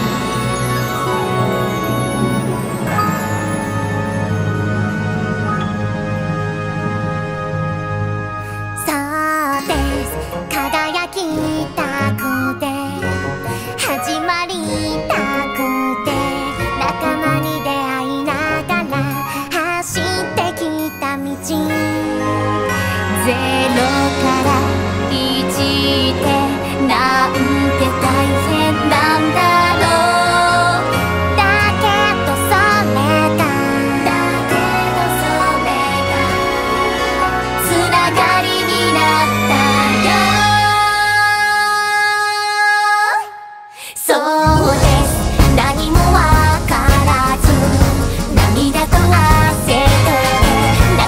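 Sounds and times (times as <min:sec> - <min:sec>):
orchestra sustained note: 0:00.0 - 0:08.9
orchestral pop song: 0:00.0 - 0:51.0.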